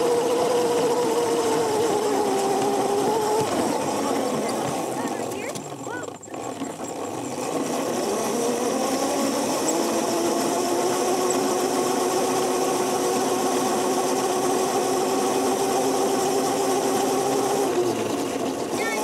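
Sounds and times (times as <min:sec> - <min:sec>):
electric go-kart motor whining: 0:00.0 - 0:19.0.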